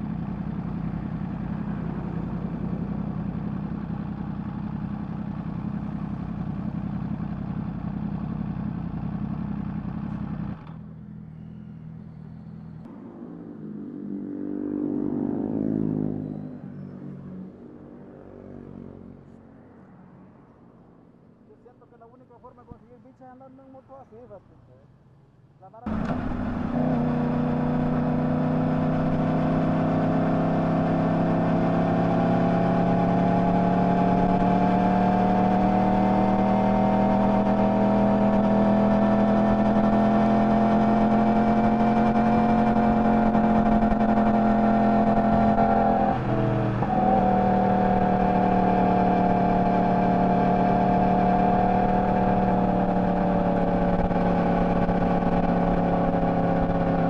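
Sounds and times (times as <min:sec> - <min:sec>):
motorcycle engine cruising: 0:00.0 - 0:17.8, 0:25.9 - 0:57.0.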